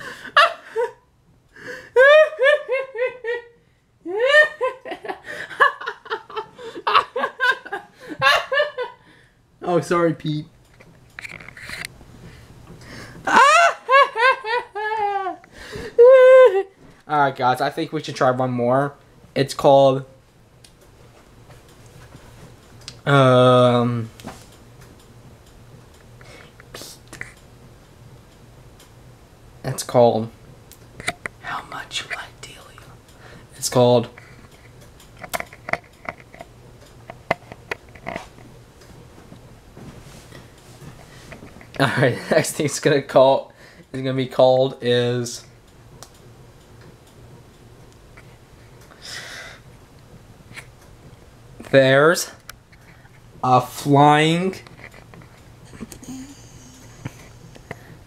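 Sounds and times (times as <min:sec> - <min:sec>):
low room hum: 0:00.0 - 0:58.0
light ticking clicks: 0:22.6 - 0:23.0, 0:45.6 - 0:49.0
low hum: 0:54.4 - 0:58.0.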